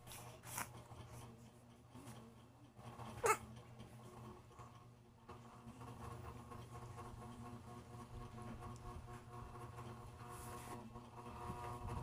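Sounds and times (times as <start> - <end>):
newborn baby squeaking: 3.2 - 3.4.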